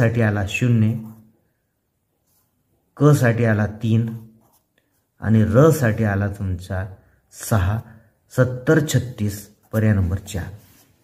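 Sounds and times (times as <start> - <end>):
person speaking: 0.0 - 1.5, 2.2 - 11.0
pencil scratching on paper: 4.1 - 5.1.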